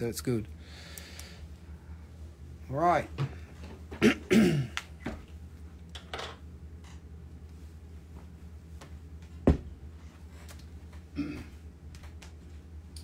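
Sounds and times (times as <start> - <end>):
low steady hum: 0.0 - 13.0
person clearing throat: 4.0 - 4.8, 11.1 - 11.6.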